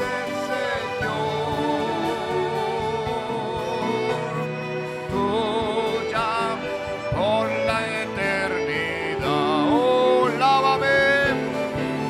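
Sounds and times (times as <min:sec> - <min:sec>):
acoustic guitar: 0:00.0 - 0:12.0
drum kit: 0:00.0 - 0:12.0
keyboard: 0:00.0 - 0:12.0
person singing: 0:00.0 - 0:12.0.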